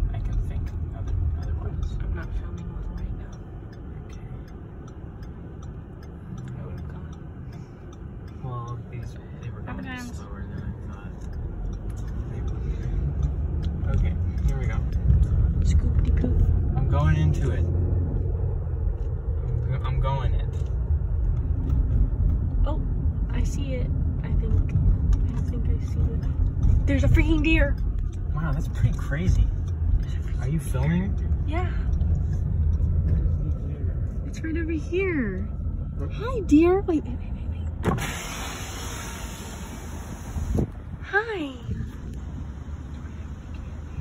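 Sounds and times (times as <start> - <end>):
car engine and tyres rumbling: 0.0 - 44.0
wind noise on microphone: 40.1 - 42.4.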